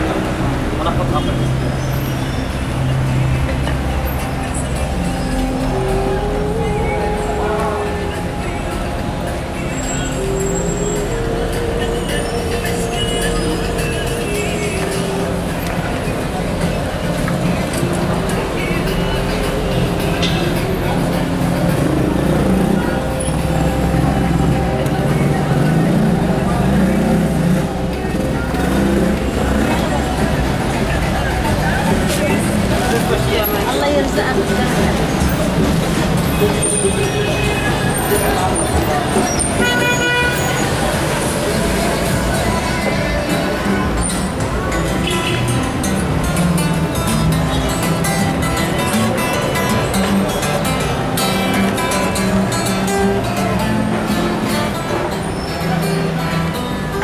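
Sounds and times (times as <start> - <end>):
cars passing and idling: 0.0 - 57.0
music: 0.0 - 57.0
people talking: 0.0 - 57.0
people's voices: 0.0 - 57.0
traffic rumble: 0.0 - 57.0.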